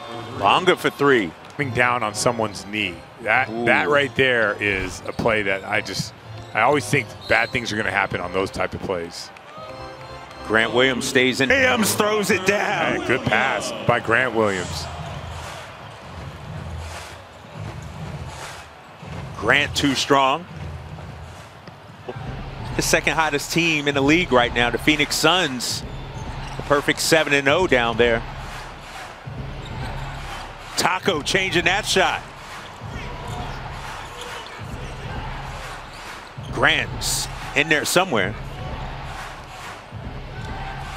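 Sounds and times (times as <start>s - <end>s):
hum of crowd noise: 0.0s - 40.9s.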